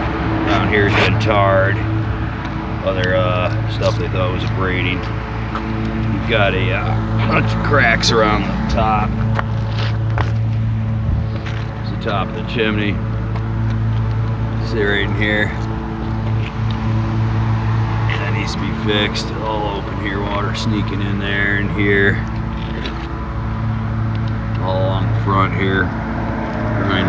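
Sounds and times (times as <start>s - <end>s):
low motor hum: 0.0s - 27.0s.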